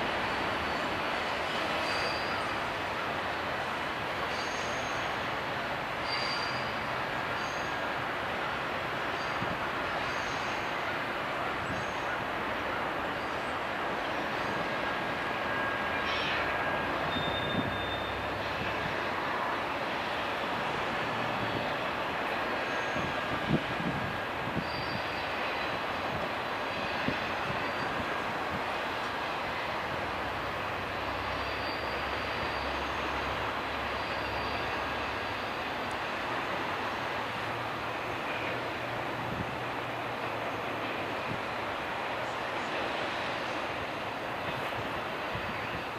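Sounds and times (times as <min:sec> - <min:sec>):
train wheels rumbling on rails: 0:00.0 - 0:45.9
thin high squeals: 0:01.7 - 0:02.6, 0:04.3 - 0:05.1, 0:06.0 - 0:07.8, 0:09.2 - 0:09.4, 0:15.6 - 0:18.3, 0:24.6 - 0:25.7, 0:31.4 - 0:33.1, 0:33.9 - 0:35.0.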